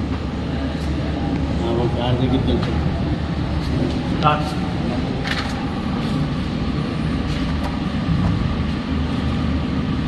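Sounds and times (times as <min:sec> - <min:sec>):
workshop machinery rumble: 0:00.0 - 0:10.0.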